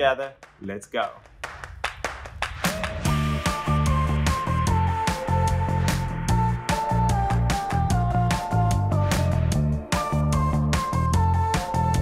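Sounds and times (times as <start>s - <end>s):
sharp claps: 0.0s - 4.4s
background music with bass line: 1.2s - 12.0s.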